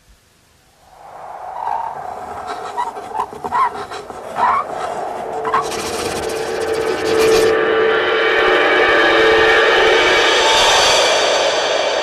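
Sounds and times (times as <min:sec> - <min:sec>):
buzzing rasp: 0:01.8 - 0:07.6.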